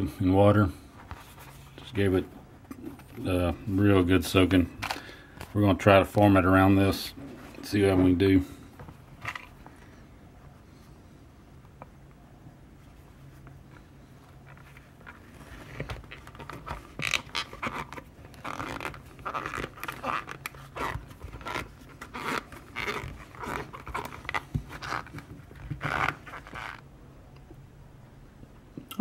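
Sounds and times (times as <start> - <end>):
wet leather squishing and rustling: 14.4 - 26.8.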